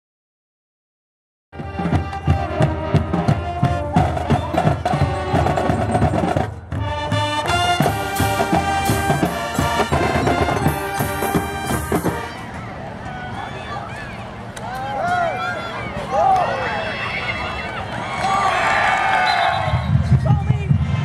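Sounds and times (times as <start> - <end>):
snare and bass drums: 1.6 - 12.4, 19.6 - 21.0
pep band playing: 1.6 - 12.8.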